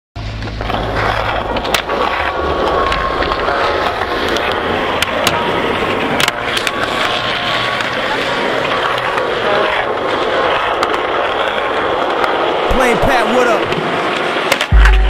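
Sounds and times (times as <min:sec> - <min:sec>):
skateboard wheels on rough asphalt: 0:00.2 - 0:15.0.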